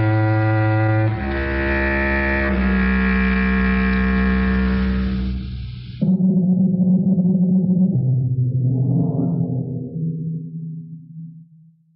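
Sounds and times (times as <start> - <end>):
music of sustained low chords: 0.0 - 11.9.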